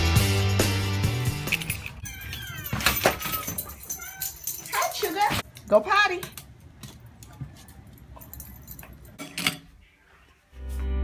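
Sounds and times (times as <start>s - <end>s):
music: 0.0s - 2.0s, 10.5s - 11.0s
small dog whining and yelping: 2.0s - 4.6s.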